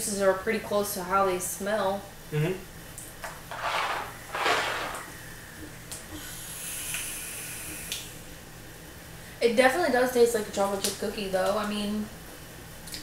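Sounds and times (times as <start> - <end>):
atomizer coil hissing: 3.3 - 8.5
vapour being exhaled: 6.2 - 8.2.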